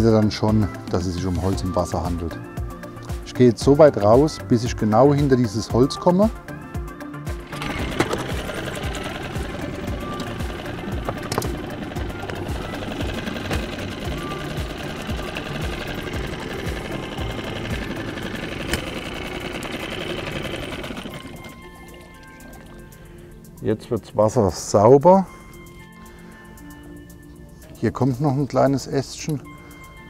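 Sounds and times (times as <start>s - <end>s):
outboard motor running: 7.3s - 23.4s.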